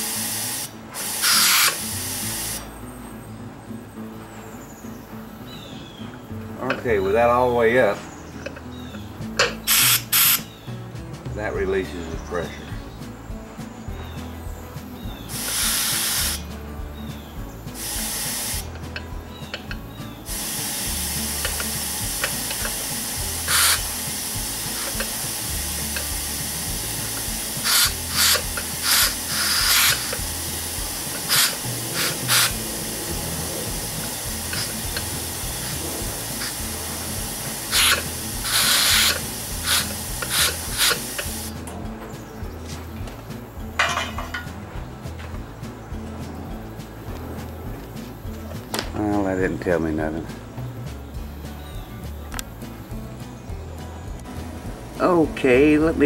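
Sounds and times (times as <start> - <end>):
air hissing from valve: 0.0 - 2.8, 6.7 - 10.6, 15.2 - 16.6, 17.6 - 41.6.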